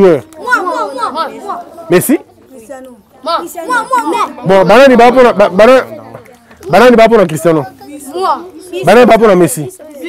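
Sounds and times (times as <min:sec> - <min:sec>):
children calling out: 0:00.3 - 0:10.0.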